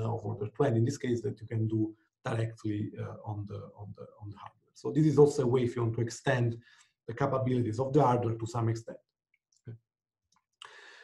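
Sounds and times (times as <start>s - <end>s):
short breath: 10.6s - 11.0s.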